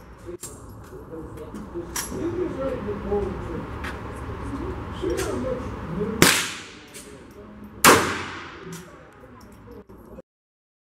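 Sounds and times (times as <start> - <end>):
pistol shot echoing indoors: 6.2 - 6.9, 7.8 - 8.8.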